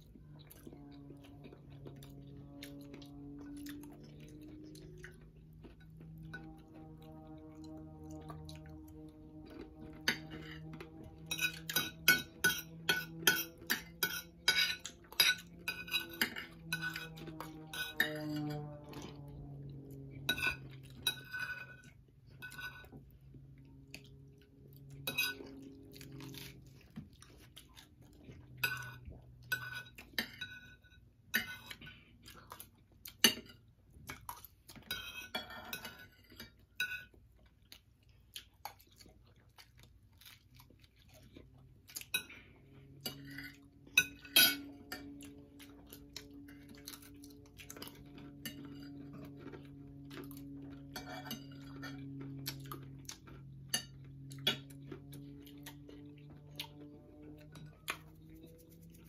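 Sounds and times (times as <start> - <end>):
chewing: 0.0 - 59.0
faint low hum: 0.0 - 59.0
cutlery scraping on ceramic plates: 0.3 - 27.0, 28.3 - 32.2, 33.1 - 33.7, 34.7 - 37.2, 42.0 - 59.0.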